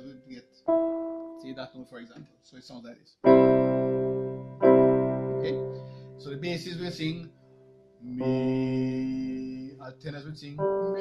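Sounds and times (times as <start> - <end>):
electronic keyboard piano chord: 0.0 - 2.0, 3.2 - 7.2, 8.2 - 9.7, 10.4 - 11.0.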